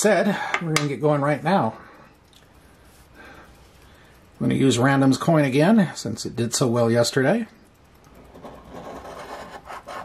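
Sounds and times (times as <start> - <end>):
coin scraping a lottery ticket: 8.2 - 10.0.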